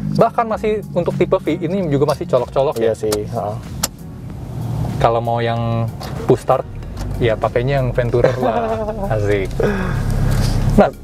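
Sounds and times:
car engine starting: 0.0s - 11.0s.

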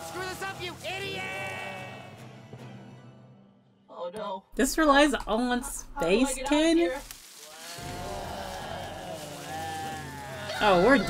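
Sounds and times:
long moaning voice: 7.5s - 10.7s.

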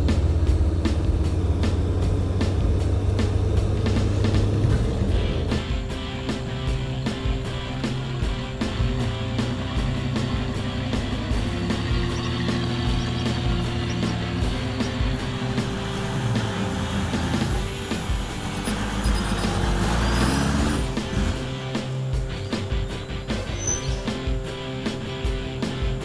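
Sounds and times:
rising sweep: 0.0s - 24.6s
background music with steady beat: 0.0s - 26.0s.

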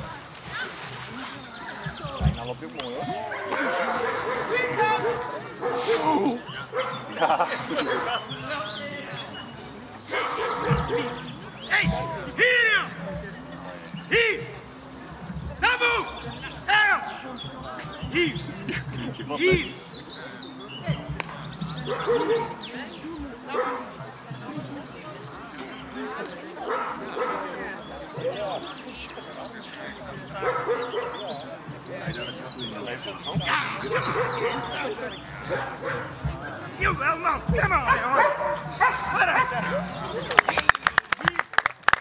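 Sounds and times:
voices talking: 0.0s - 42.0s
dog barking: 3.3s - 6.0s, 6.7s - 7.0s, 10.1s - 11.2s, 21.8s - 22.6s, 23.5s - 23.9s, 26.6s - 27.6s, 30.4s - 31.2s, 33.9s - 34.8s, 35.4s - 36.2s, 37.9s - 39.9s.

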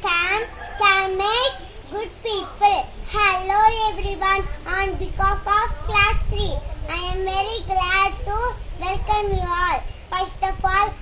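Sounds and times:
girl singing unaccompanied: 0.0s - 11.0s.

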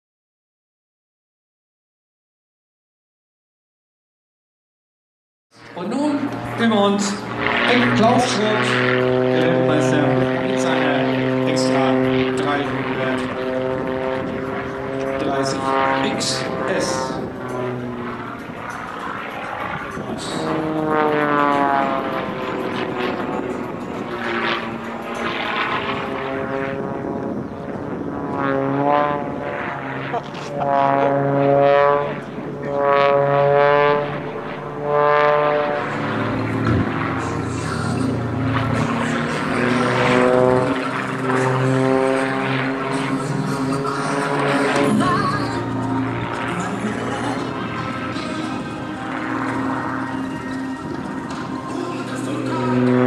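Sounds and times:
plane engine and propeller overhead: 5.5s - 53.0s.

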